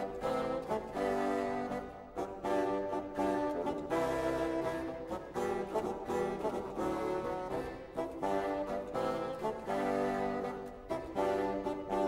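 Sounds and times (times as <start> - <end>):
renaissance dance music on brass: 0.0 - 12.0.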